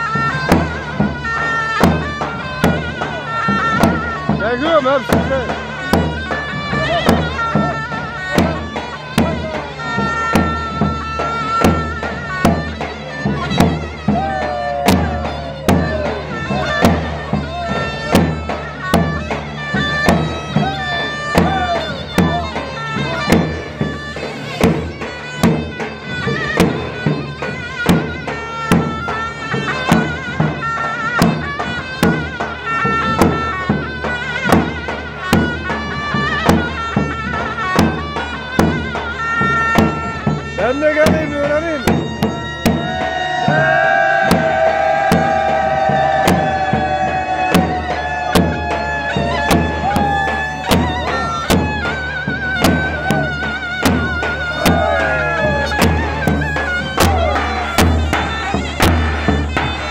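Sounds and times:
reedy wind instrument melody: 0:00.0 - 0:59.9
steady drum beat: 0:00.0 - 0:59.9.

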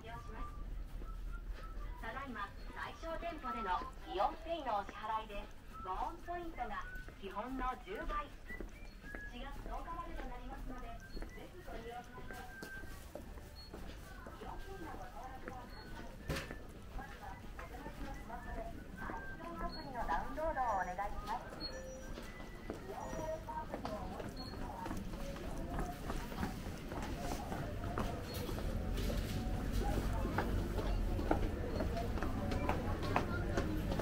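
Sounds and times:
footsteps on hard floor: 0:03.7 - 0:20.4, 0:21.1 - 0:34.0.

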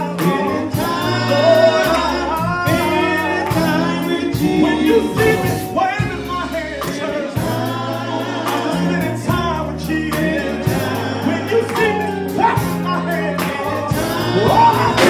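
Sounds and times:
backing vocals: 0:00.0 - 0:15.0
bass guitar and band: 0:00.0 - 0:15.0
male lead singer: 0:00.0 - 0:15.0.

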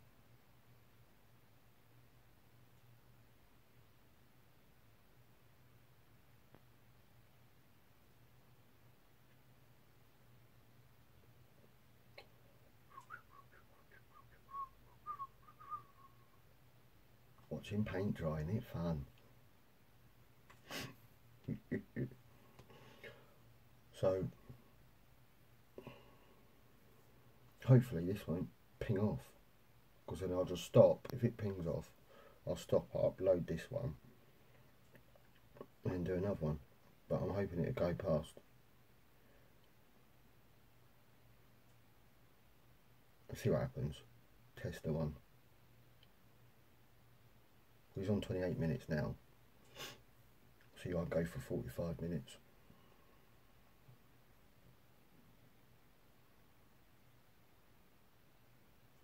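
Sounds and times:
person whistling short notes: 0:12.9 - 0:16.4.

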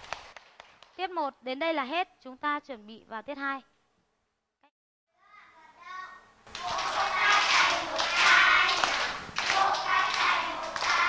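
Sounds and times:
children clapping: 0:00.0 - 0:01.0, 0:06.5 - 0:11.0
children singing together: 0:06.5 - 0:11.0.

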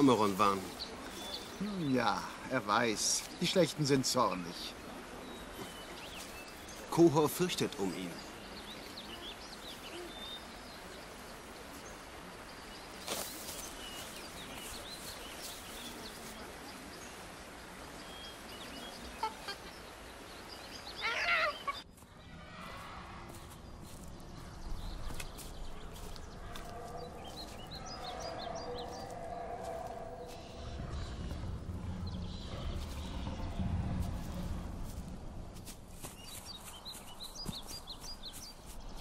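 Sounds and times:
steady jungle hiss: 0:00.0 - 0:39.0.

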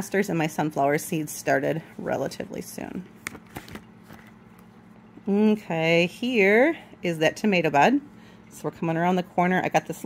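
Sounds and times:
plastic page protectors crinkling: 0:03.2 - 0:04.4.

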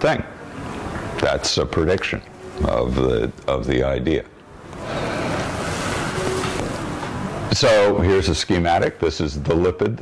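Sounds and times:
air blowing across microphone: 0:04.6 - 0:07.6.

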